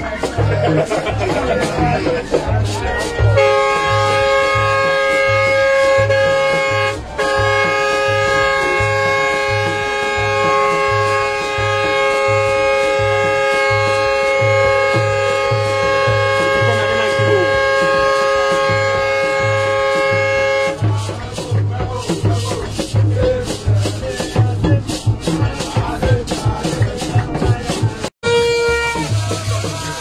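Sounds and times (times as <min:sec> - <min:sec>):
music with thumping bass beat: 0:00.0 - 0:30.0
bus air horn blast: 0:03.2 - 0:21.0, 0:28.2 - 0:29.6.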